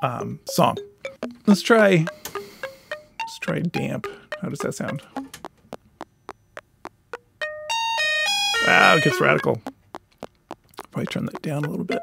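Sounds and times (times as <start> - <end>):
synth sustained pitched tones: 7.7 - 9.7.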